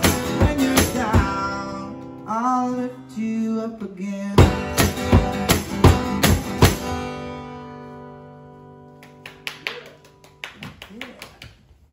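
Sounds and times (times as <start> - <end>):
acoustic guitar chord ringing: 0.0 - 9.0
audience clapping: 8.9 - 11.9.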